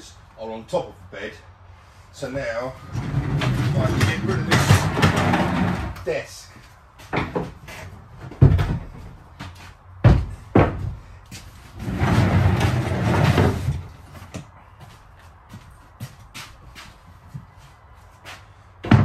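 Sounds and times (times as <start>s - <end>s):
wood scraping: 2.7s - 6.1s, 10.2s - 14.4s.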